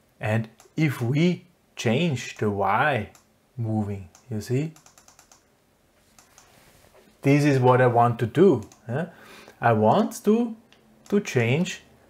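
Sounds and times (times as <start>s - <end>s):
keyboard keys clicking: 4.2s - 5.4s.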